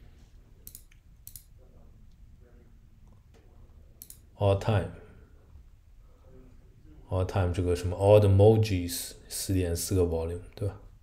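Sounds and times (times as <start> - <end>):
computer mouse clicks: 0.6 - 1.5, 4.0 - 4.2.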